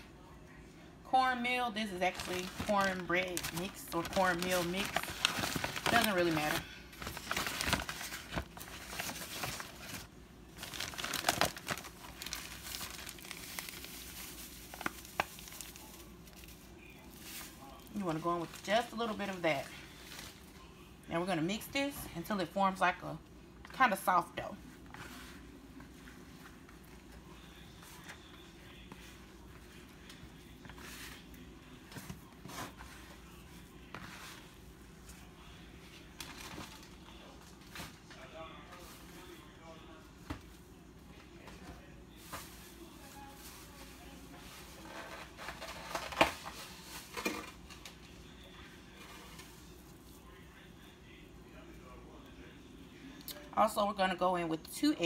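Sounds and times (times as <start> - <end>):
hand mixing dough: 1.9 - 20.7, 24.6 - 36.0.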